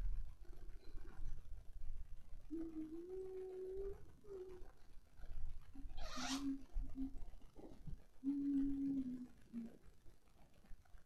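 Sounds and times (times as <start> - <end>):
voice holding low notes: 2.5 - 4.7, 8.2 - 9.8.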